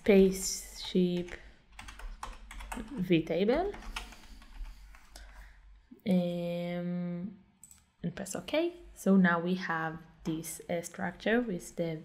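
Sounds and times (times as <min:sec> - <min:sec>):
person speaking: 0:00.0 - 0:01.4, 0:02.6 - 0:04.2
typing on computer keyboard: 0:00.8 - 0:05.4.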